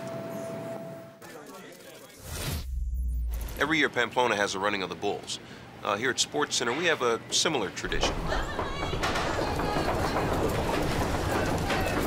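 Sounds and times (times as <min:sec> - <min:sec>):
crowd footsteps running: 0:07.9 - 0:12.0.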